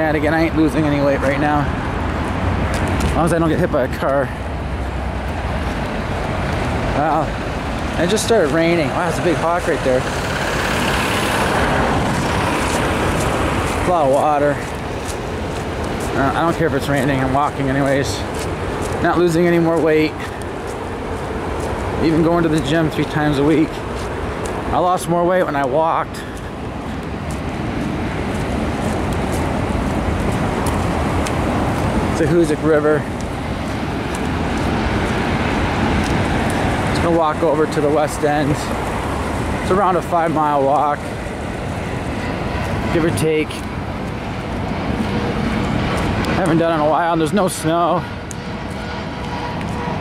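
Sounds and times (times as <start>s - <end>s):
car tyres hissing on wet road: 4.4s - 16.3s, 26.1s - 46.8s.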